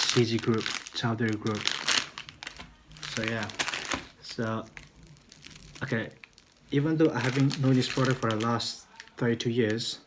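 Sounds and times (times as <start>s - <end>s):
plastic packet crinkling: 0.0s - 9.9s.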